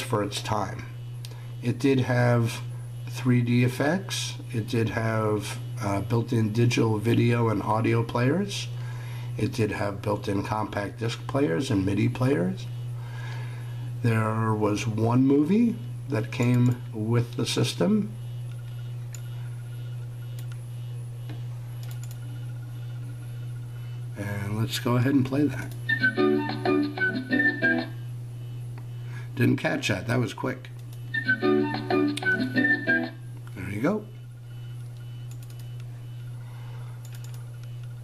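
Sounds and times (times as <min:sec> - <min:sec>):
desktop computer humming: 0:00.0 - 0:38.0.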